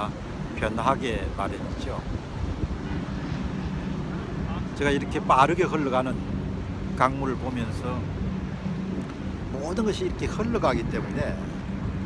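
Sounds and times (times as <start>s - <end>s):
fast-flowing river: 0.0s - 12.0s
wind buffeting microphone: 0.0s - 12.0s.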